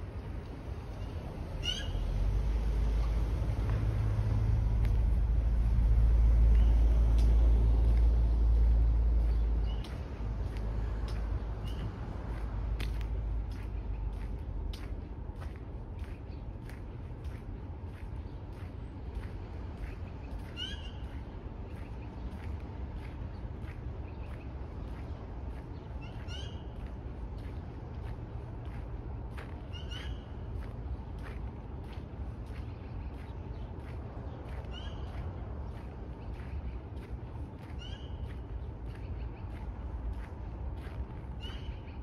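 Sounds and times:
vehicle engine rumble: 0.0 - 42.0.

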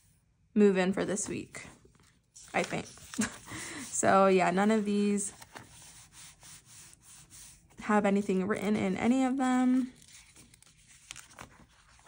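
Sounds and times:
paper pages rustling: 1.2 - 8.9, 9.8 - 12.0.

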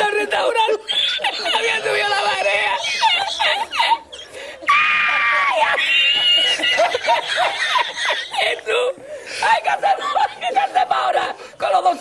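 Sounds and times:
man laughing uncontrollably: 0.6 - 4.3, 5.6 - 8.9.

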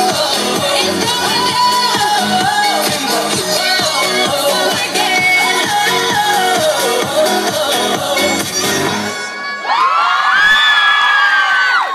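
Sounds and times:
pop dance music: 0.0 - 9.8
people whooping and screaming: 9.3 - 11.9.

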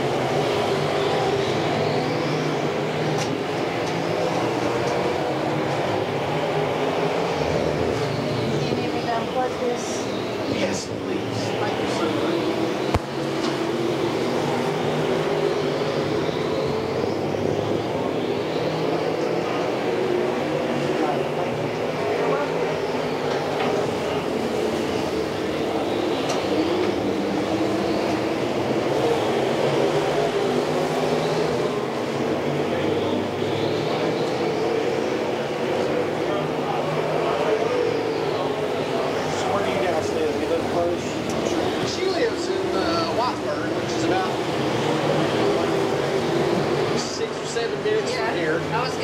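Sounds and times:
racing car engines droning: 0.0 - 49.0.

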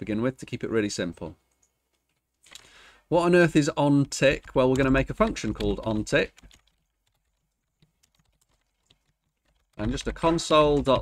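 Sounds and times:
faint keyboard keystrokes: 4.2 - 11.0.

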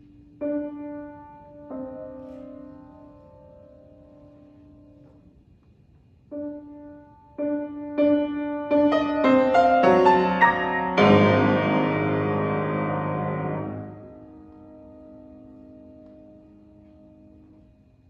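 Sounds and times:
grand piano: 0.0 - 18.0.

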